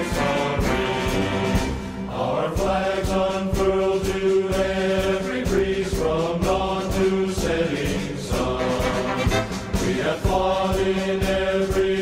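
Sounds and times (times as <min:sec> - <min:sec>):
chant-like choral voices: 0:00.0 - 0:12.0.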